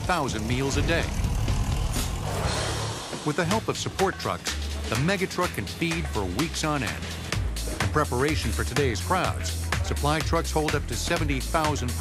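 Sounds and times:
truck engine rumble: 0.0s - 9.7s.

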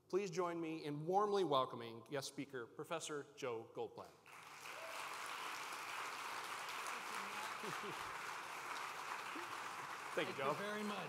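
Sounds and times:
audience applauding: 4.3s - 11.0s.

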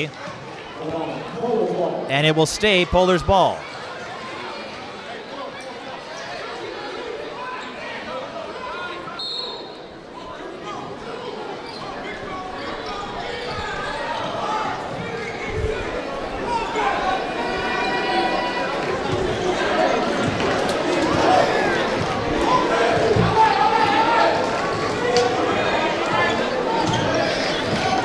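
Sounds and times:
crowd chatter: 0.0s - 28.0s.

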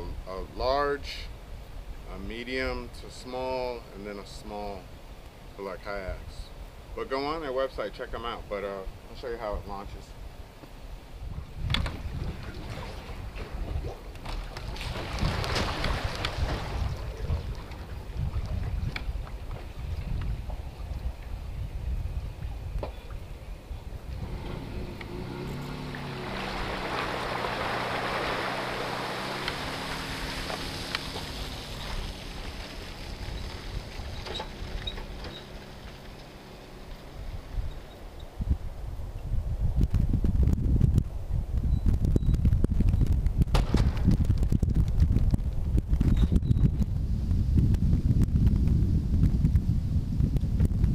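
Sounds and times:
wind buffeting microphone: 8.9s - 50.9s
rush of water: 11.6s - 21.5s, 24.1s - 37.7s.

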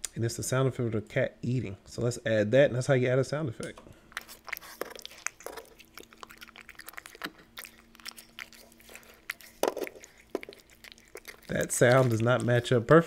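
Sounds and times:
faint steady hum: 0.0s - 13.0s
cat chewing and crunching: 4.2s - 13.0s.

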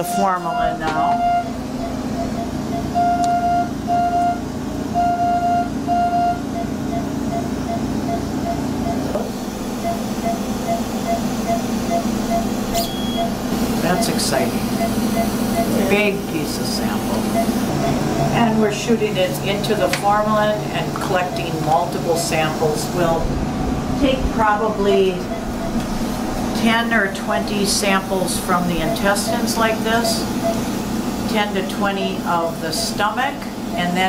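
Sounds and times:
patient monitor beeping: 0.0s - 23.2s, 24.0s - 34.0s
steady machine hum: 0.0s - 34.0s.

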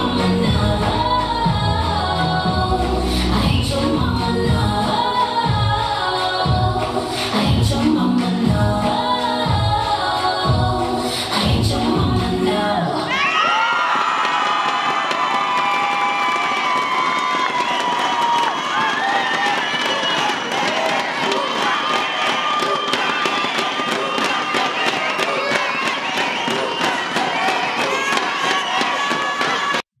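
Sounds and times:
audience cheering and screaming: 13.1s - 29.8s
applause: 13.5s - 29.8s.

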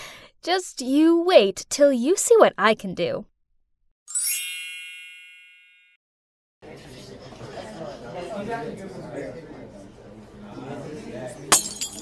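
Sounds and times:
magical bell-like chime: 4.1s - 6.0s.

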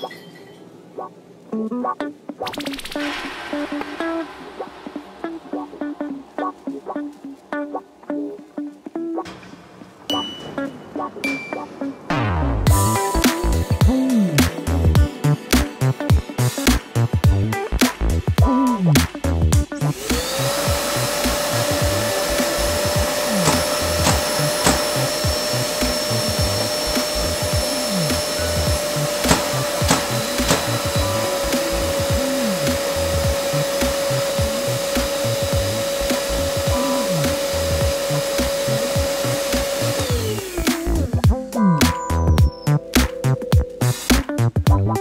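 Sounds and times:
dust extractor turbine whining: 3.1s - 41.3s.

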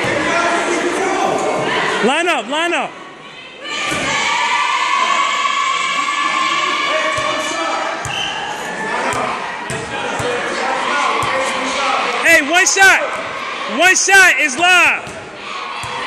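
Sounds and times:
voices in a gym: 0.0s - 16.0s.

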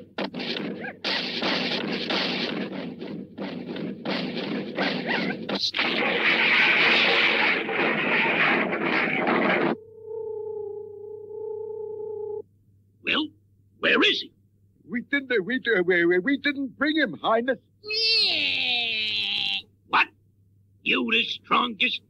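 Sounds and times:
harsh choppy cartoon noise: 0.0s - 9.8s
electronic hum of flying saucers: 7.8s - 12.5s.

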